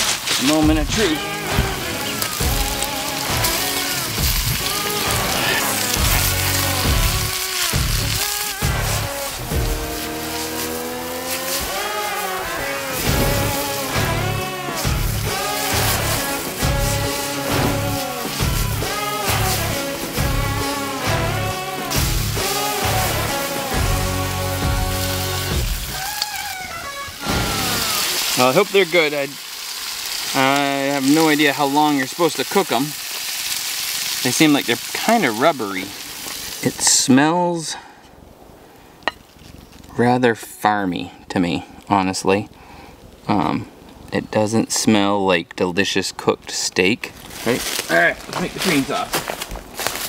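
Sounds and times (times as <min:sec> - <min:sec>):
background music with sliding melody: 0:00.5 - 0:28.2.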